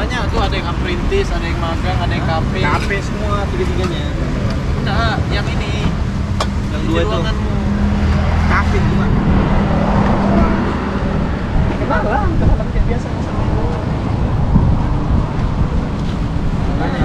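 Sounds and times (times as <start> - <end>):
background chatter: 0.0 - 17.0
engine hum: 0.0 - 17.0
road traffic rumble: 0.0 - 17.0.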